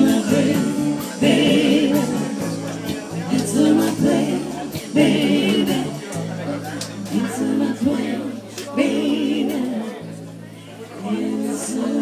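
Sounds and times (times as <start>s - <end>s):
drums: 0.0s - 10.3s
bass notes: 0.0s - 12.0s
women singing together: 0.0s - 12.0s.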